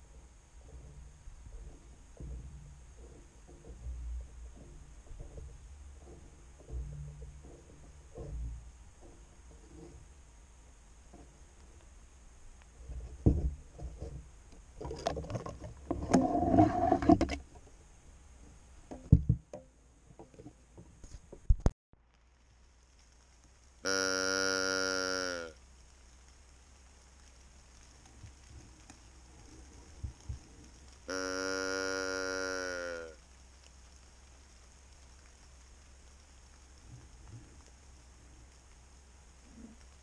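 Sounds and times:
bumps rubs and scrape: 0.0s - 12.1s, 12.7s - 17.8s
crossbow handling noise: 12.7s - 17.7s
deer call: 23.8s - 25.6s, 31.1s - 33.2s.

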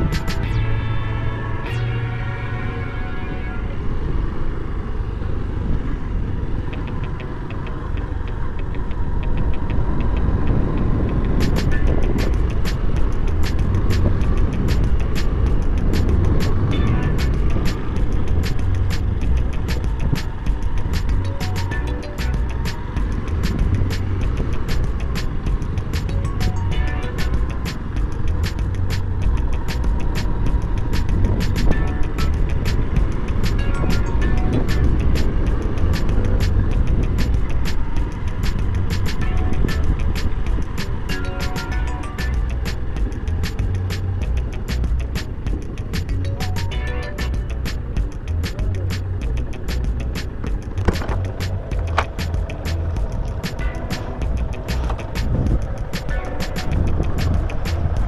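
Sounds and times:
background music with steady beat: 0.0s - 4.2s, 6.6s - 58.0s
motorcycle engine running slowly: 4.0s - 58.0s.

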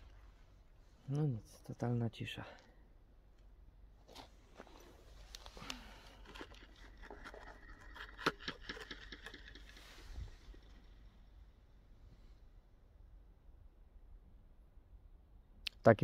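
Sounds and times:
gravel crunching: 4.0s - 11.6s
plastic device clicks and scrapes: 6.2s - 10.8s.

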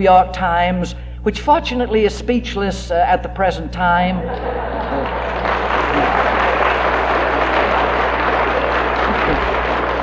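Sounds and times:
audience clapping: 4.2s - 10.0s
audience laughing: 4.2s - 10.0s.

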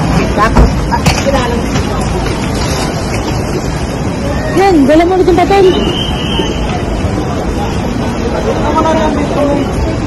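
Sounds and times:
busy outdoor background noise: 0.0s - 10.0s
voices: 0.2s - 10.0s.

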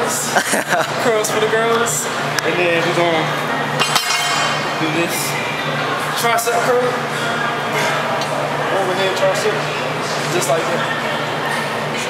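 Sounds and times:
barbell clinking against metal: 3.8s - 4.6s.

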